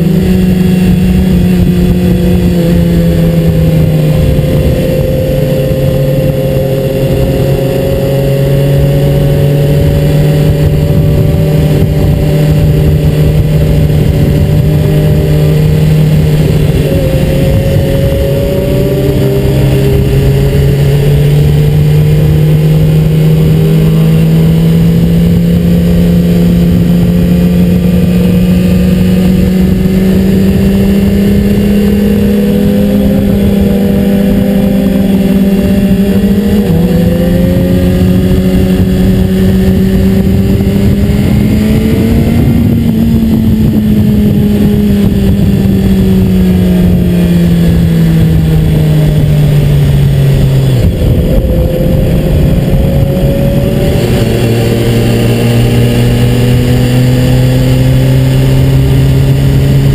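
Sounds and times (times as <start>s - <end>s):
motorcycle engine: 0.0s - 59.9s
wind rumble on microphone: 0.0s - 59.9s.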